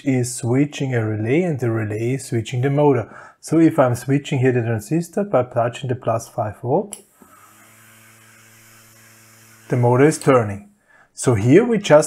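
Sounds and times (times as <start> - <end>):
small motor humming: 7.0 - 10.2.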